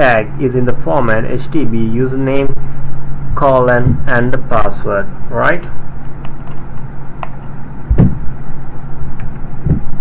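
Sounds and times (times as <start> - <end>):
low electrical hum: 0.0 - 10.0
dull low thumps: 7.8 - 8.4, 9.6 - 10.0.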